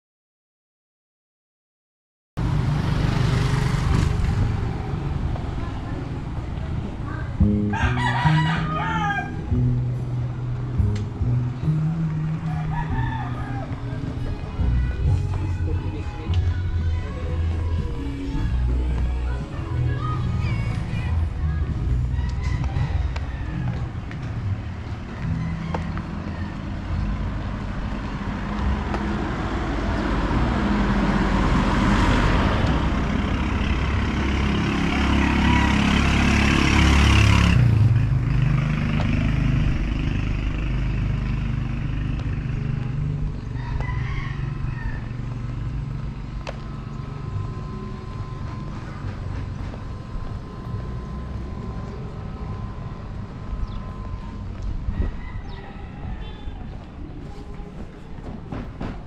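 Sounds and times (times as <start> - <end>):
vehicle passing by: 2.4 - 58.5
street ambience: 2.4 - 59.0.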